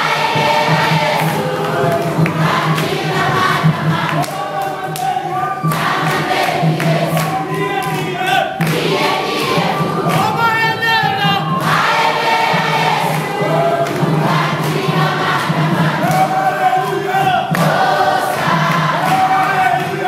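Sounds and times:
congregation singing: 0:00.0 - 0:20.0.

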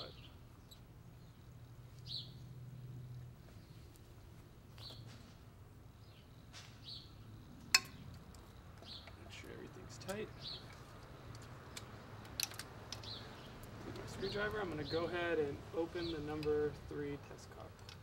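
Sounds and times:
bird chirping: 0:00.0 - 0:04.0, 0:04.8 - 0:05.2, 0:05.9 - 0:11.9, 0:12.9 - 0:16.5.

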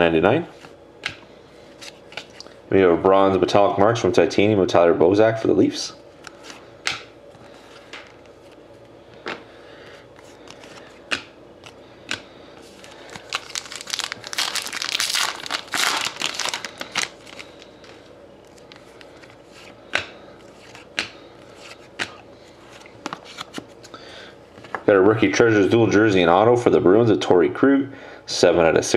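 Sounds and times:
foil wrapper crinkling: 0:12.7 - 0:19.3.

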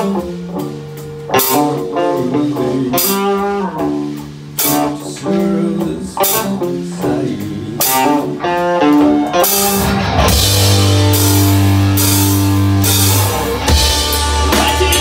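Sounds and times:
band playing heavy held chord: 0:00.0 - 0:15.0
electric guitars picking melody: 0:00.0 - 0:15.0.

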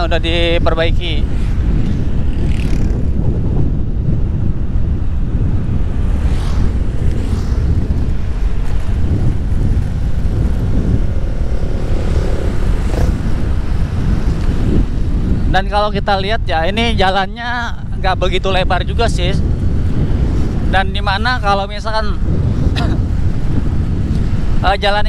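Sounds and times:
road noise: 0:00.0 - 0:25.0
strong wind on microphone: 0:00.0 - 0:25.0
motorcycle engine: 0:01.2 - 0:15.5.

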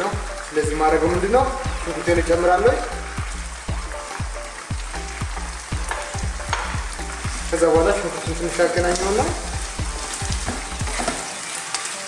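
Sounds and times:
chicken sizzling in a pot: 0:00.0 - 0:12.0
spatula knocking against pan: 0:05.8 - 0:06.8, 0:10.4 - 0:11.2.

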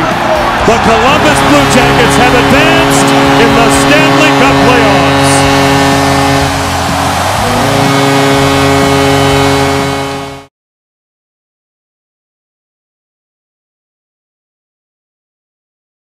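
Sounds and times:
arena horn blast: 0:00.0 - 0:10.5
crowd cheering: 0:00.0 - 0:10.5.

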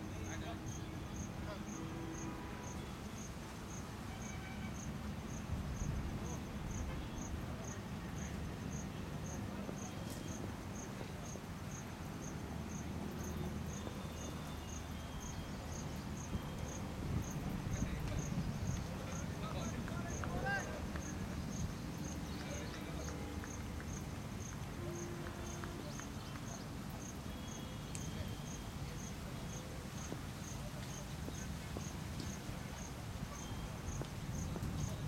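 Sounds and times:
insect chirping: 0:02.7 - 0:20.2, 0:26.5 - 0:35.0.

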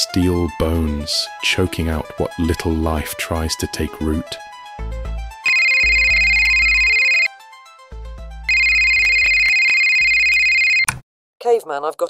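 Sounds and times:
smartphone ringtone: 0:05.4 - 0:07.3, 0:08.5 - 0:10.9.

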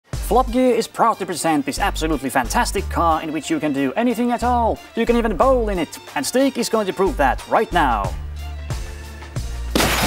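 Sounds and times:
background music with bass: 0:00.0 - 0:10.0
car windscreen shattering: 0:09.7 - 0:10.0.

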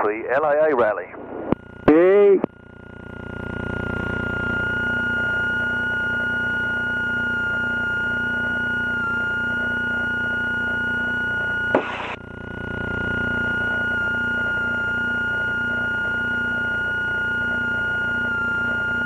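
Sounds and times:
high whine: 0:00.0 - 0:19.0.

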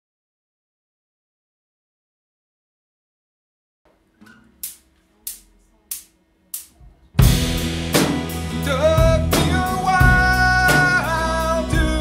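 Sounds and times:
count-in clicks: 0:04.2 - 0:06.8.

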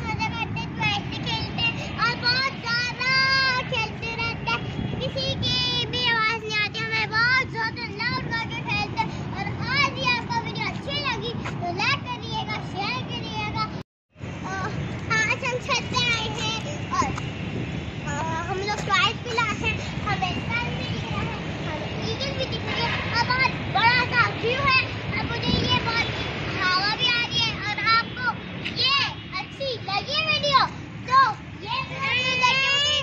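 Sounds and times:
girls chattering and calling out: 0:18.0 - 0:33.0
children shouting excitedly: 0:18.1 - 0:33.0.

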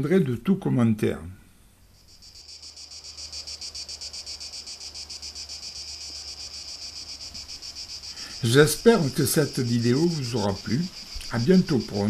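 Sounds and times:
cicadas buzzing: 0:01.8 - 0:12.0.

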